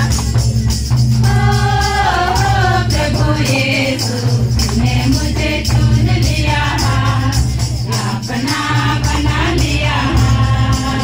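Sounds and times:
jingling percussion: 0.0s - 11.0s
women singing through microphone: 1.2s - 11.0s.

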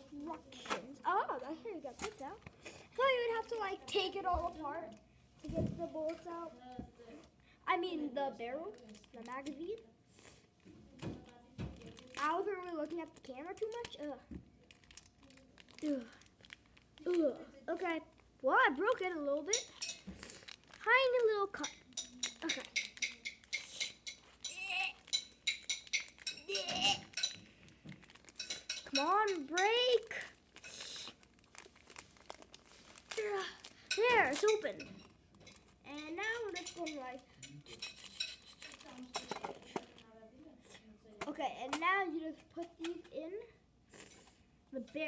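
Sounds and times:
plastic toy parts clicking: 21.2s - 27.4s.

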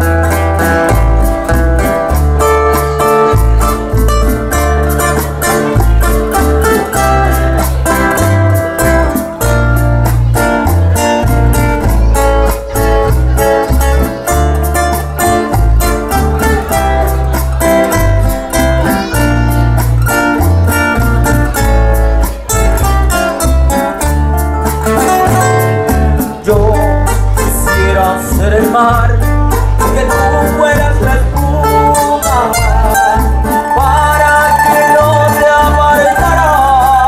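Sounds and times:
acoustic guitars playing: 0.0s - 37.0s
bass line: 0.0s - 37.0s
man singing: 26.1s - 37.0s.

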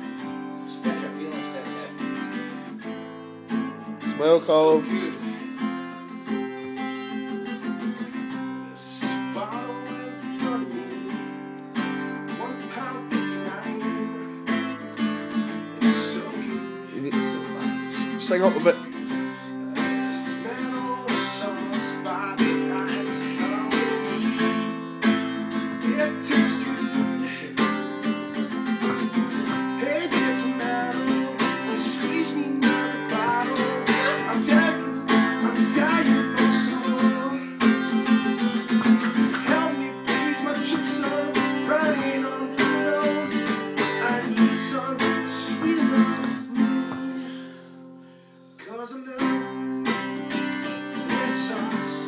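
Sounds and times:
acoustic guitar strumming chords: 0.0s - 52.0s.

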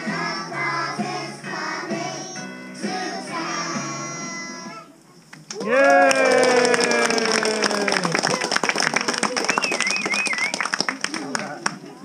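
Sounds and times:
children's choir singing: 0.0s - 4.8s
audience clapping and cheering: 5.4s - 11.9s.

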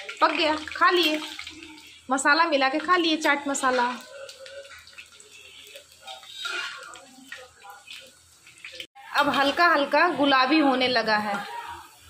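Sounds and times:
oil sizzling while deep-frying: 0.0s - 12.0s.

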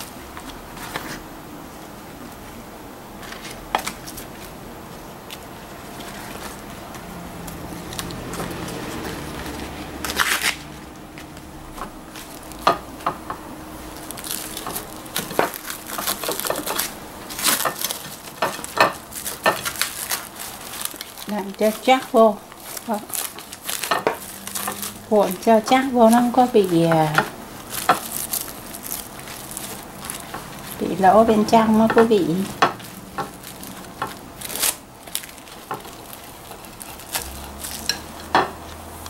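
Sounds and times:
leaves and plastic rustling: 0.0s - 39.0s.

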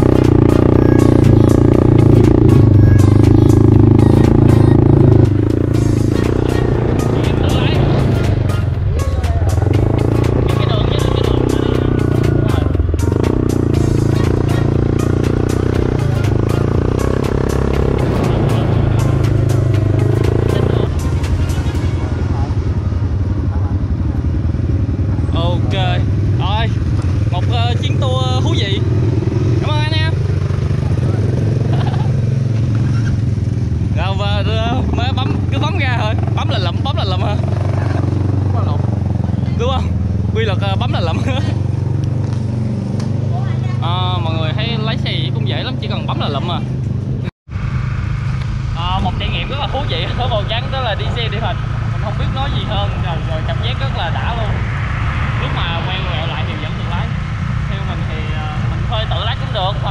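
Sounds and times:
background music: 0.0s - 23.9s
voices: 0.0s - 32.2s, 48.7s - 59.9s
quad bike engine running: 0.0s - 55.0s.

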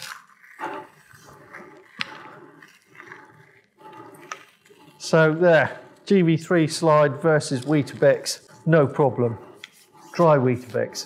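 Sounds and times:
carriage rolling through crumbs: 0.0s - 11.0s.

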